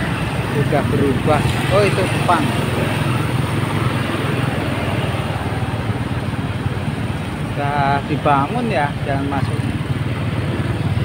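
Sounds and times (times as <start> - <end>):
motor vehicle rumble: 0.0 - 11.0
road and wind noise: 0.0 - 11.0.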